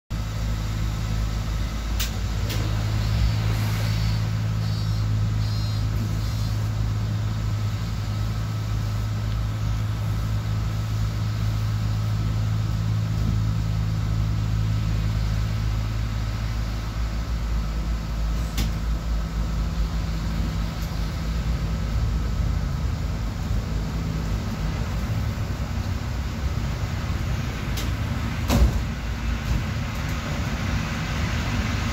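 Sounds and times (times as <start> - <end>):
bus engine idling: 0.1 - 31.9.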